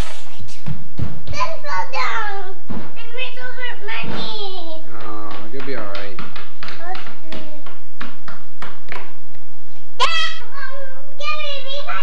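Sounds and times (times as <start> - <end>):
young child's voice: 1.3 - 4.9, 6.7 - 7.7, 10.0 - 12.0
sharp taps: 4.0 - 9.4.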